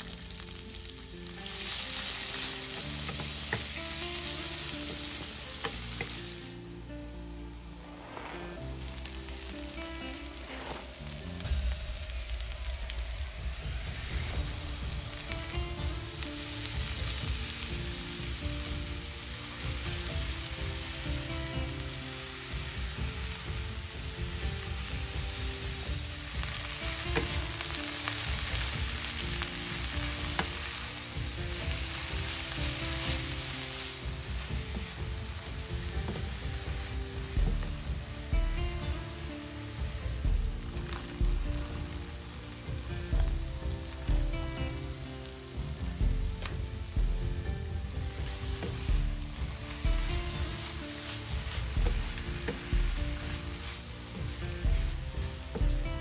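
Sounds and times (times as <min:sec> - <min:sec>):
vegetables sizzling in oil: 0:00.0 - 0:56.0
wooden spatula stirring: 0:48.3 - 0:55.8.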